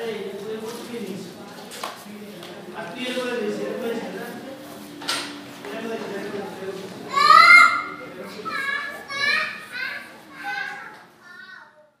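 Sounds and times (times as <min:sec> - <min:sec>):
children calling out and chattering: 0:03.9 - 0:12.0.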